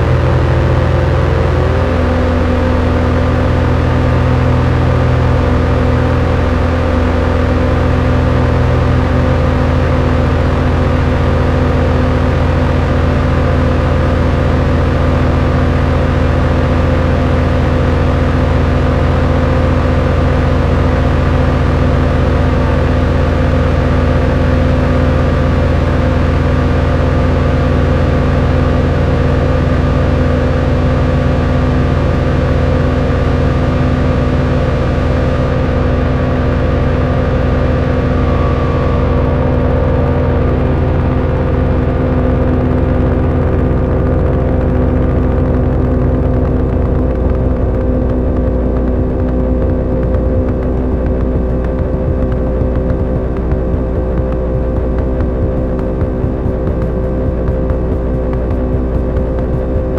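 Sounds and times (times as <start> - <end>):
synthesizer noise drone: 0.0 - 59.9.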